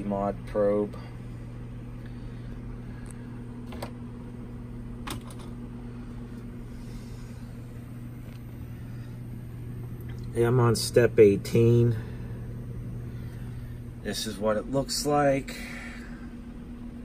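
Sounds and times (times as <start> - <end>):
low mains hum: 0.0 - 17.0.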